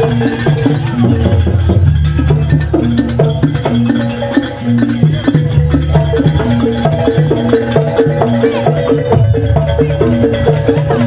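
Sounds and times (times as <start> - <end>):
drum and percussion strokes: 0.0 - 11.0.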